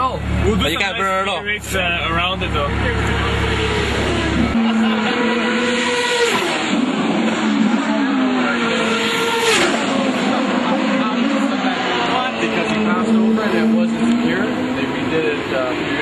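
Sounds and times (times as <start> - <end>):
race car engines passing: 0.0 - 16.0.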